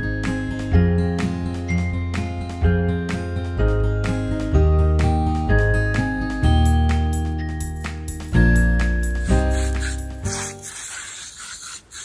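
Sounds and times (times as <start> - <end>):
hose spray nozzle hissing: 9.2 - 12.0.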